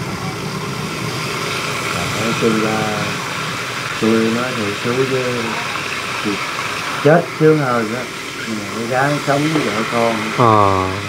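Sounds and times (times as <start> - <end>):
water rushing into metal basin: 0.0 - 10.7.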